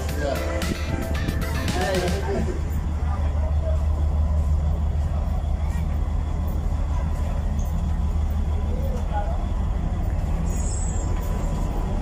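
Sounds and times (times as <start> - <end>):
boat engine droning: 0.0 - 12.0.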